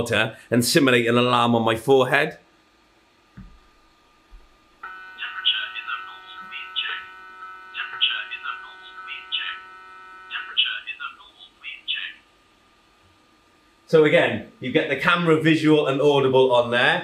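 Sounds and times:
electronic multi-tone alarm: 4.8s - 10.5s.

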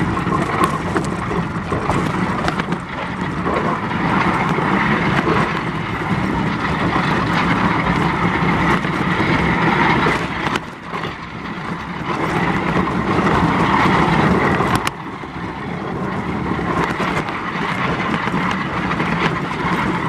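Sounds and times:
bobsleigh runners rushing on ice: 0.0s - 20.0s.

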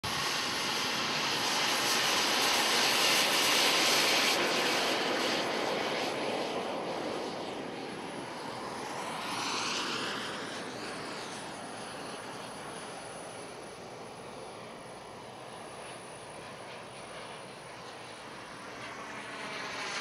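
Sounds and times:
model jet turbine engine: 0.0s - 20.0s.

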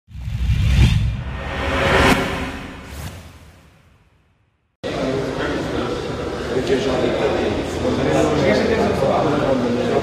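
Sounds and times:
whoosh effect: 0.2s - 4.2s
brief swish: 0.5s - 3.9s.

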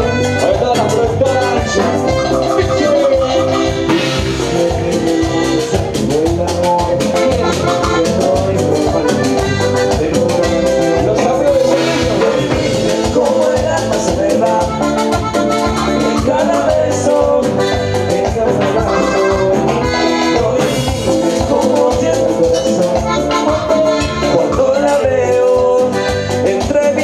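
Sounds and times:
accordion melody: 0.0s - 27.0s
driving drum beat: 0.0s - 27.0s.

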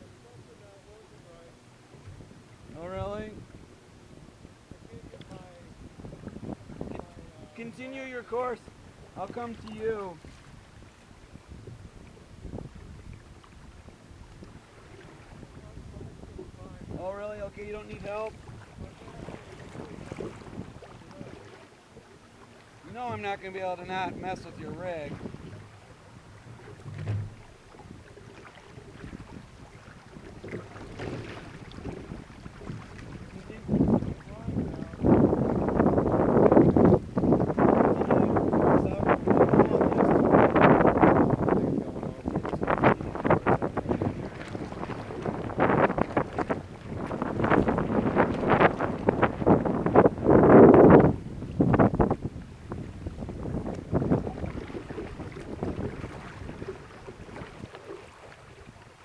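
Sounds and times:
water sloshing against kayak hull: 0.0s - 59.0s
wind buffeting microphone: 0.0s - 59.0s
small water splashes: 12.0s - 15.8s, 18.1s - 35.0s, 43.6s - 49.8s, 51.4s - 59.0s
knock on kayak: 25.1s - 28.0s, 30.2s - 34.4s.

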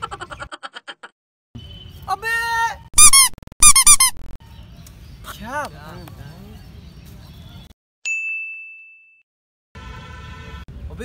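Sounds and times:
comic high-pitched squeaks: 3.0s - 4.4s.

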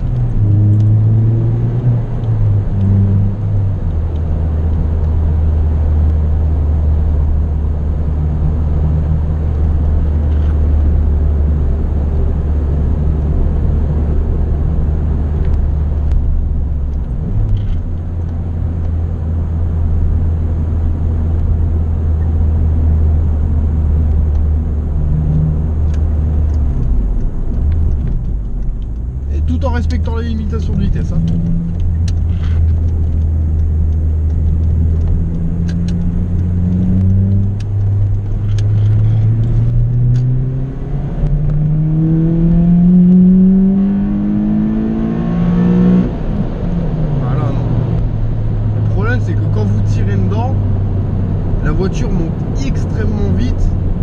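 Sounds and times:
car engine humming from cabin: 0.0s - 54.0s.

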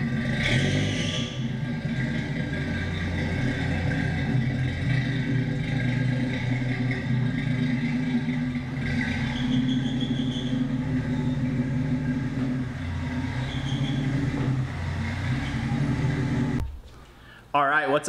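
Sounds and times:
car engine idling: 0.0s - 17.5s.

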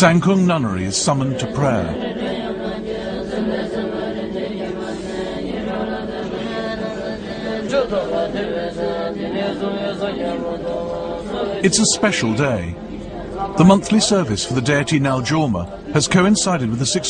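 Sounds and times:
women chanting in unison: 1.8s - 11.6s.

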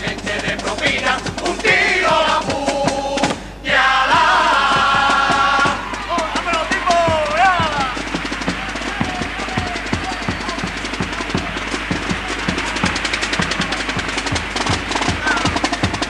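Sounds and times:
bass drum and snare beating: 0.0s - 16.0s
audience applause and cheering: 3.9s - 16.0s.

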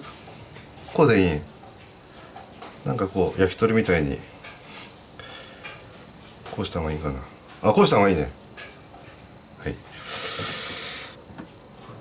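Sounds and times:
loud hiss: 9.9s - 11.2s.

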